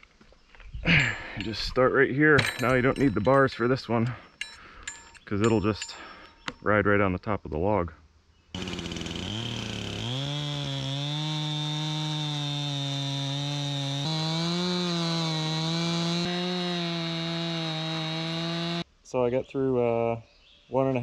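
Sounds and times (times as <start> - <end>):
chainsaw cutting log: 8.6 - 18.8.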